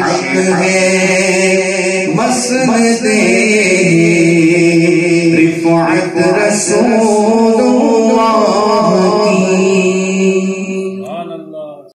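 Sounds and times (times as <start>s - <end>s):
man singing through a microphone: 0.0s - 11.3s.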